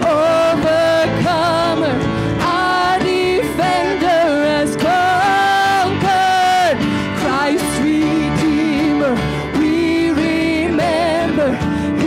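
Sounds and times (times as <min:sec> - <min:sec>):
band playing praise song: 0:00.0 - 0:12.0
woman singing lead: 0:00.0 - 0:12.0.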